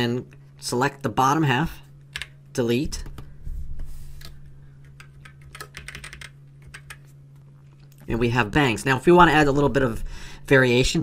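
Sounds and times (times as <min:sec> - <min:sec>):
low steady hum: 0:00.0 - 0:11.0
keyboard and mouse clicks: 0:02.1 - 0:02.4, 0:04.2 - 0:07.1.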